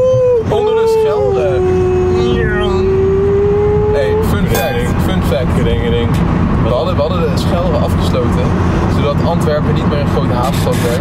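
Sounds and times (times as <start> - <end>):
car cabin road and engine noise: 0.0 - 11.0
long held tone dropping in pitch: 2.2 - 7.9.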